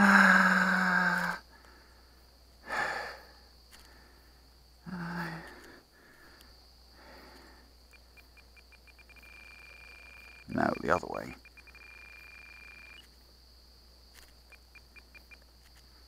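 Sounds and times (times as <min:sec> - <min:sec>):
man exhaling breathily: 0:00.0 - 0:03.4
man sighing: 0:04.8 - 0:05.8
faint rapid ticks: 0:05.4 - 0:06.6, 0:07.2 - 0:13.2, 0:14.1 - 0:16.0.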